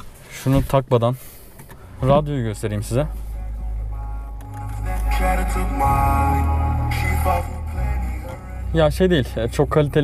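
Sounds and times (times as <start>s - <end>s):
music from car radio: 1.8s - 10.0s.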